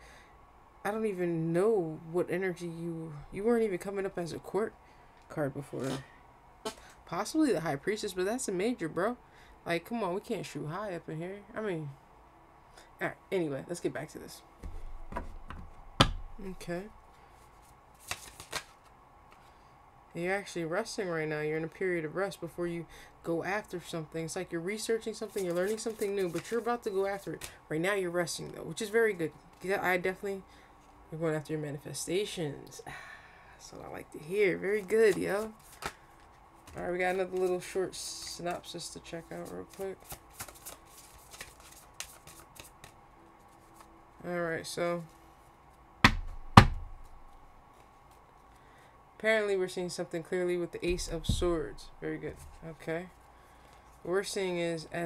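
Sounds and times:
sharp knocks on tabletop: 14.6s - 16.3s, 46.0s - 46.9s
cards being shuffled by hand: 17.4s - 19.6s, 25.0s - 27.6s, 34.7s - 44.0s, 50.9s - 53.9s.

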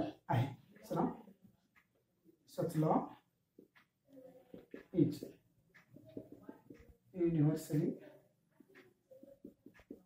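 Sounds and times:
person speaking: 2.4s - 10.0s.

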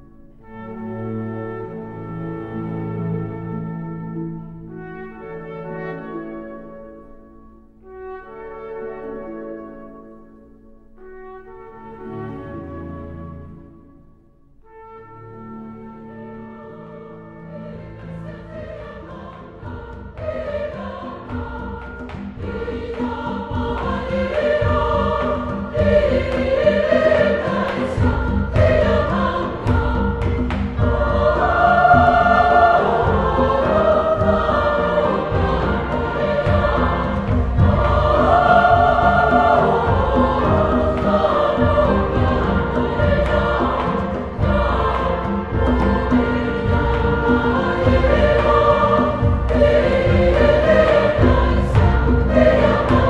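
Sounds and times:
choir singing with instruments: 0.0s - 7.1s, 14.6s - 53.0s.

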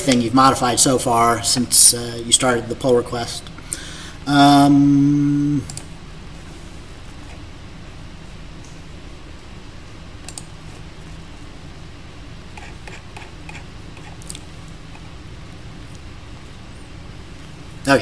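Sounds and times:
low room hum: 0.0s - 18.0s.

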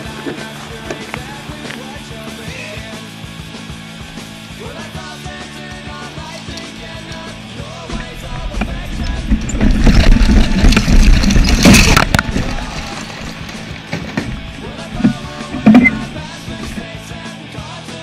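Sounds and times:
rock music: 0.0s - 18.0s
plastic toy wheels rattling on pavement: 8.0s - 16.9s.

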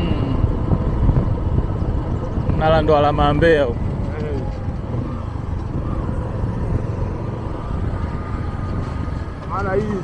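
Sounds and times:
vehicle driving rumble: 0.0s - 10.0s.

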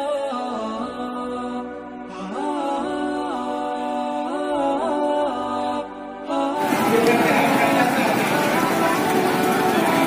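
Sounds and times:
chanted vocal music: 0.0s - 10.0s.

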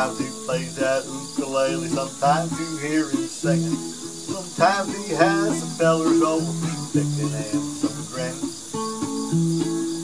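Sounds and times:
person singing: 0.0s - 8.8s
crickets chirping: 0.0s - 10.0s
ukulele strumming: 0.0s - 10.0s.

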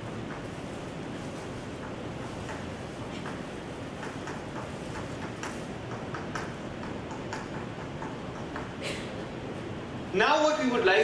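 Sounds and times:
steady hiss: 0.0s - 11.0s
chalk tapping on blackboard: 1.8s - 8.8s.

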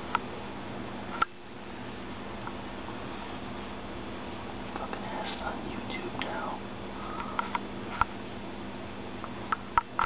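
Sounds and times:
steady low hum: 0.0s - 10.0s
person whispering: 4.7s - 6.7s.

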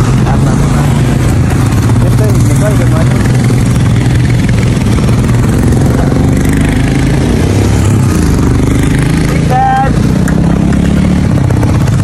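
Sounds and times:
motorcycle engines running: 0.0s - 12.0s.

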